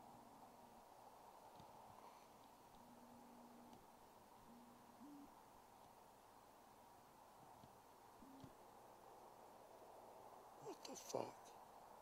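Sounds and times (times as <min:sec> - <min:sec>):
owl hooting faintly: 0:00.0 - 0:09.8.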